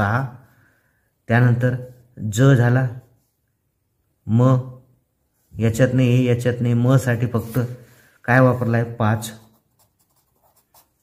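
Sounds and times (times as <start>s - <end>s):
pencil writing on paper: 9.4s - 11.0s.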